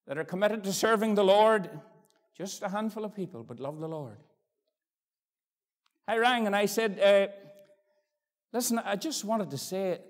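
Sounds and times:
man speaking: 0:06.0 - 0:07.6, 0:08.5 - 0:10.0.

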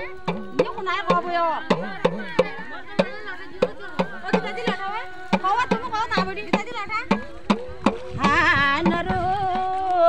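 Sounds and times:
hand drum strikes: 0:00.0 - 0:10.0
woman singing folk melody: 0:00.0 - 0:10.0.

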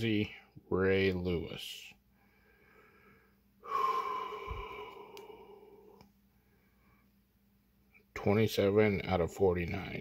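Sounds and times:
man's breathy sigh: 0:02.5 - 0:06.0.

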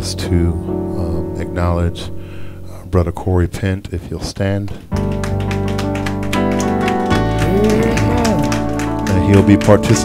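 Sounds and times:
electronic keyboard chords: 0:04.8 - 0:10.0.

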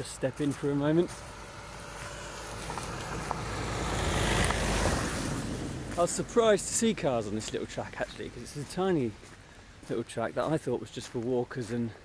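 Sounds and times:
car driving past: 0:01.1 - 0:07.3.

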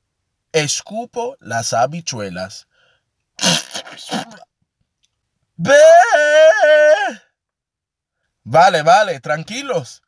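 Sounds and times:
man crying out in disgust: 0:05.6 - 0:07.2.

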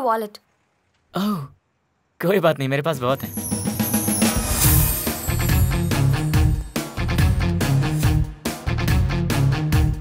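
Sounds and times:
person speaking: 0:02.2 - 0:03.6.

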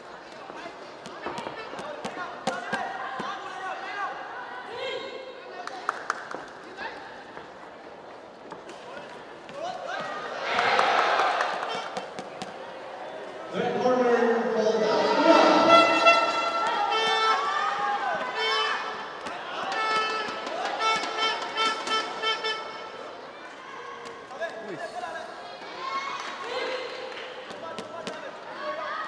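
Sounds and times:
people shouting: 0:14.7 - 0:22.0.

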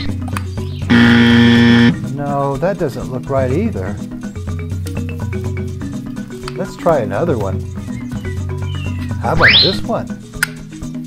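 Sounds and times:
light background music: 0:00.0 - 0:11.0
wrong-answer buzzer: 0:00.9 - 0:02.0.

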